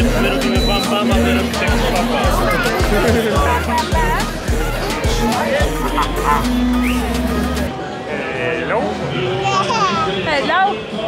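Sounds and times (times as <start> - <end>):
music: 0.0 - 11.0.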